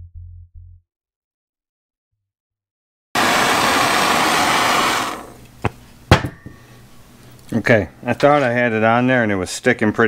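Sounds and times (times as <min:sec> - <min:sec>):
gas torch flame hissing: 0:03.2 - 0:05.5.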